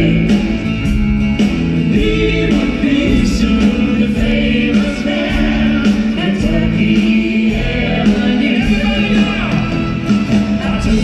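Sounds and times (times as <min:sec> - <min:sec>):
live pop band playing: 0:00.0 - 0:11.0.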